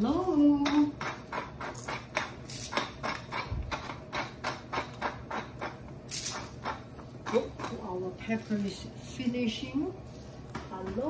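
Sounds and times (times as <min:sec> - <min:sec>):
pepper mill grinding: 0:00.1 - 0:07.8.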